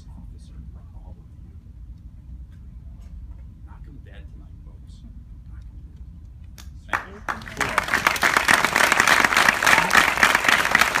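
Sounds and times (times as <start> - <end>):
audience applauding: 6.9 - 11.0.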